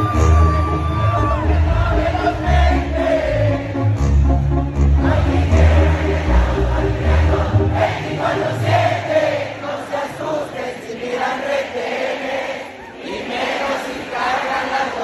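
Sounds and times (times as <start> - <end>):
live band music: 0.0 - 8.3
crowd singing along: 0.0 - 15.0.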